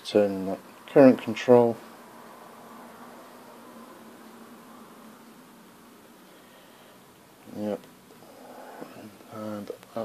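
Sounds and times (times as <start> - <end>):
faint hum: 0.0 - 10.0
steady low hiss: 0.0 - 10.0.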